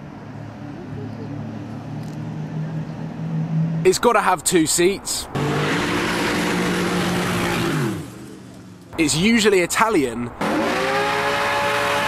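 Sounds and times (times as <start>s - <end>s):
car engine at high revs: 5.3s - 9.0s, 10.4s - 12.0s
spinning tyres hissing: 5.3s - 9.0s.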